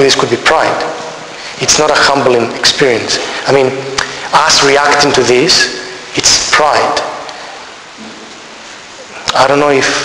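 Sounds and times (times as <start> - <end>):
man's word echoing: 0.0 - 8.4, 9.1 - 10.0
background hiss: 0.0 - 10.0.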